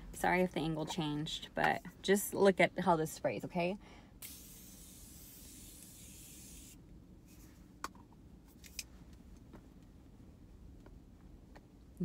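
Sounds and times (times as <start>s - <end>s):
spray bottle hissing mist: 4.2s - 6.8s.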